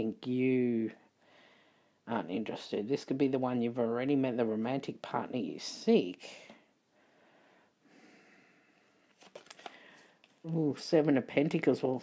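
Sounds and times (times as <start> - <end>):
tarot cards clicking: 9.2 - 10.6.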